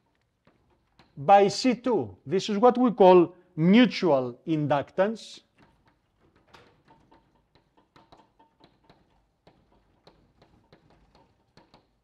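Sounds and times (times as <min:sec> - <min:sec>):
chalk tapping on a blackboard: 0:07.0 - 0:12.0.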